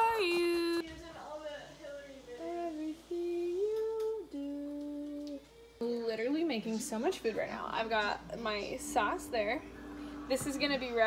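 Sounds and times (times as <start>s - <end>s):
person humming: 2.4s - 5.6s.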